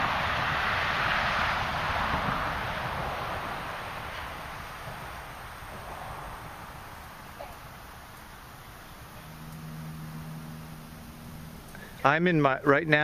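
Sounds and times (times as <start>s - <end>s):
wind buffeting: 0.0s - 11.7s.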